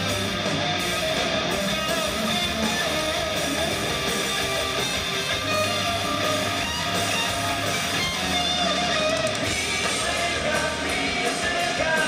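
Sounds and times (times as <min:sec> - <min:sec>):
electric guitar bent notes: 0:00.0 - 0:10.5
hard rock band playing: 0:00.0 - 0:12.0.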